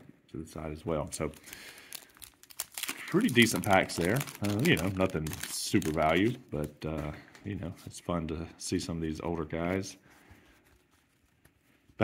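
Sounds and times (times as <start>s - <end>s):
trading cards rustling in hands: 1.2s - 8.0s, 9.6s - 12.0s.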